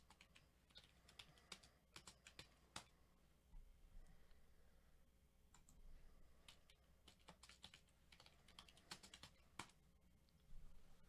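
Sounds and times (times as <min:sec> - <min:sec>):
keyboard typing: 0:00.0 - 0:03.0, 0:06.4 - 0:09.8.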